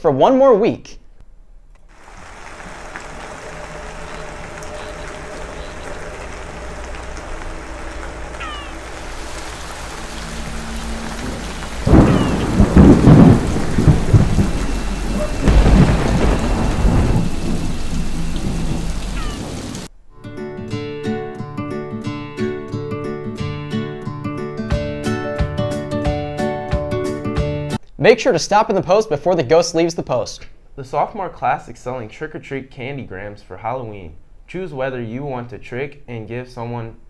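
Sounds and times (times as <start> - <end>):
heavy rain: 1.9 - 19.9
thunder rolls: 2.0 - 19.9.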